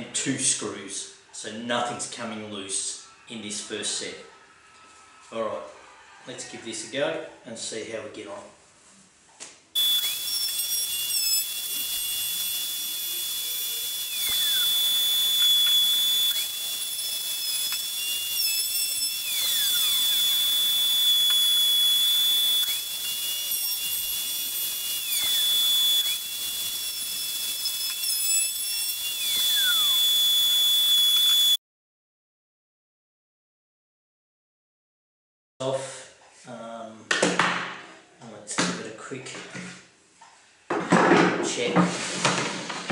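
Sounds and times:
plunge router whining: 9.8s - 31.6s.

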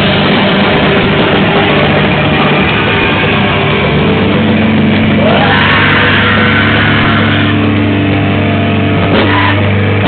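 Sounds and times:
heavy metal band playing: 0.0s - 10.0s.

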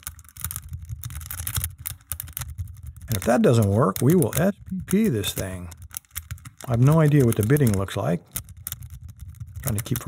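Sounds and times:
lock pick clicking and scraping: 0.0s - 10.0s.

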